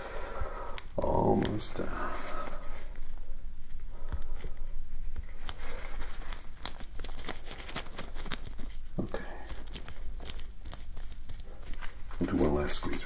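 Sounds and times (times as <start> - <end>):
gloved hands crinkling a wipe: 0.4 - 13.0.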